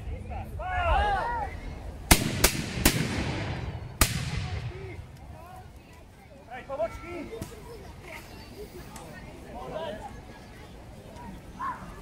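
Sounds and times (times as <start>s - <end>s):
musket shots echoing: 2.1s - 4.7s.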